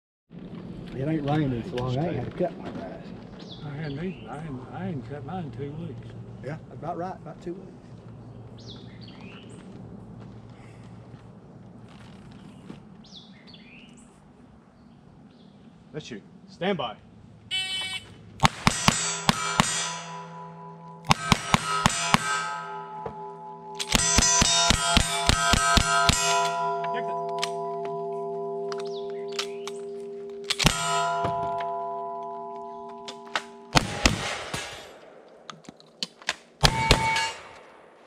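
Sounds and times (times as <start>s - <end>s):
shotgun blasts: 18.4s - 26.9s, 30.4s - 31.9s, 33.2s - 35.5s, 36.6s - 38.0s
rifle shots: 18.4s - 27.7s, 29.3s - 32.0s, 33.1s - 35.5s, 36.4s - 38.0s
steel plates ringing: 18.4s - 35.0s, 36.6s - 37.7s.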